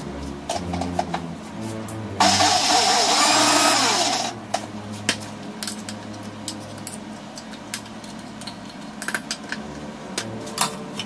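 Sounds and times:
mixer grinder burst: 2.2s - 4.4s.

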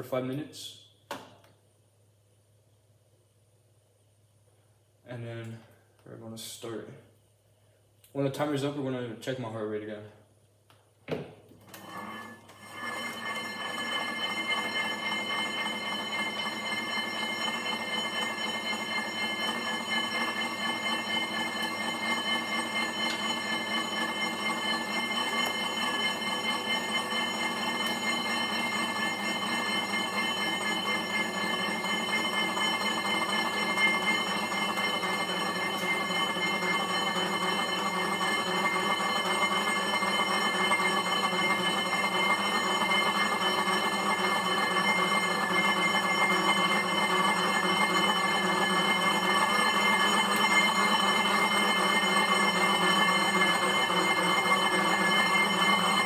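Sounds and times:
exercise bike flywheel whirring: 11.6s - 56.0s.

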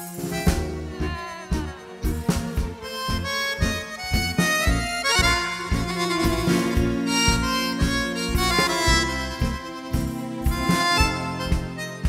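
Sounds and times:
accordion playing tango melody: 0.0s - 12.0s
bass and drum beat: 0.0s - 12.0s.

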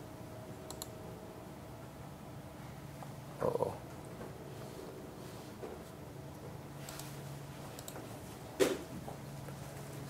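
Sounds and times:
low room hum: 0.0s - 10.0s
faint computer clicks: 0.7s - 1.0s, 7.8s - 8.0s.

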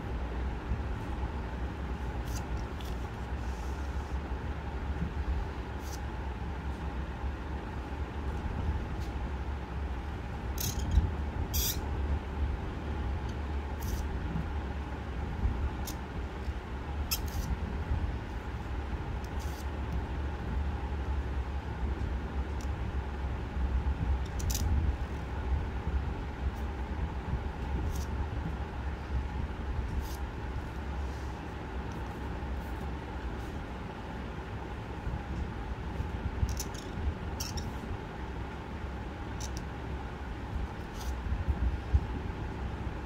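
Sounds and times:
low background rumble: 0.0s - 43.0s.

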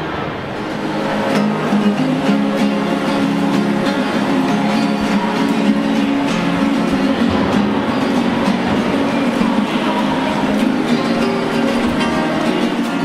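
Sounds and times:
acoustic guitar strumming chords: 0.0s - 13.0s.

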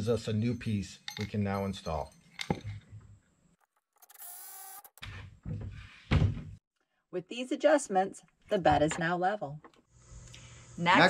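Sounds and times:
screw gun whirring: 4.0s - 5.0s.

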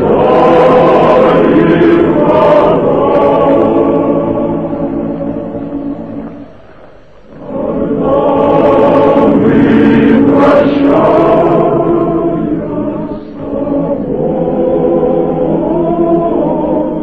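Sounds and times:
choir singing sustained chords: 0.0s - 17.0s.

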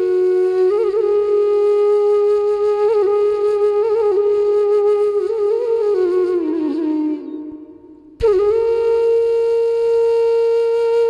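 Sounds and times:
flute holding long note: 0.0s - 11.0s.

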